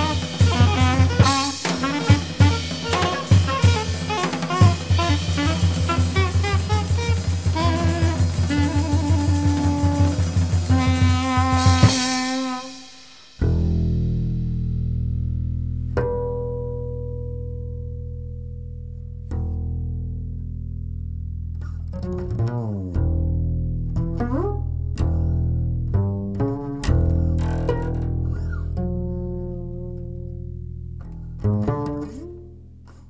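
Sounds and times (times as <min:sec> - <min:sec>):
jazz group with drums: 0:00.0 - 0:14.1
double bass notes: 0:00.0 - 0:33.0.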